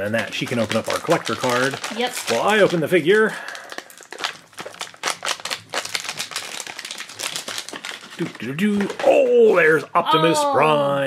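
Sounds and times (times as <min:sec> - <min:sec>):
foil pouch crinkling and tearing: 0:00.2 - 0:09.0.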